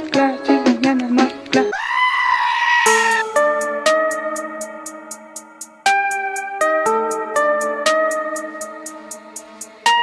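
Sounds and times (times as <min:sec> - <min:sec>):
upbeat plucked-string music: 0:00.0 - 0:01.7, 0:02.9 - 0:10.0.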